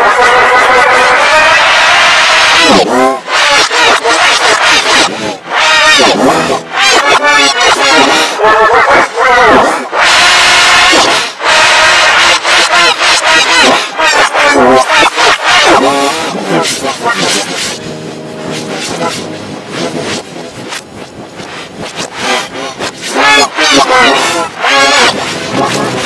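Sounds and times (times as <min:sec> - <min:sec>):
distorted backwards shouting and screaming: 0:00.0 - 0:26.0
held droning tones: 0:05.3 - 0:07.1, 0:16.3 - 0:23.2, 0:24.1 - 0:26.0.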